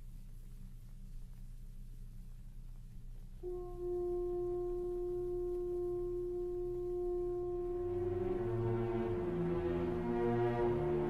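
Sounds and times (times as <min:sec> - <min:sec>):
faint low hum: 0:00.0 - 0:11.0
french horns holding a note: 0:03.4 - 0:11.0.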